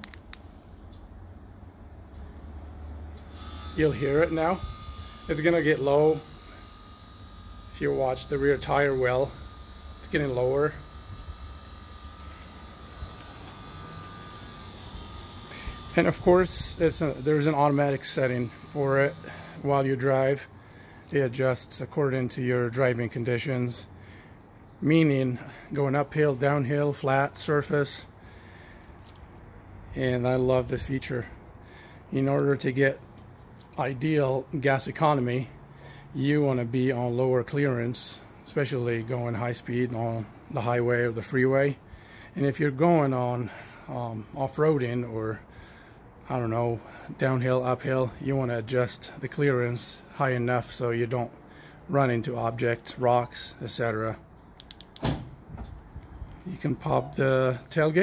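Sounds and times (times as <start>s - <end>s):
air suspension whine: 0.0s - 21.2s, 23.8s - 32.2s, 35.4s - 36.2s, 54.3s - 56.8s
faint steady background noise: 0.0s - 58.0s
steady low hum: 0.0s - 58.0s
key fob button clicks: 54.6s - 55.1s.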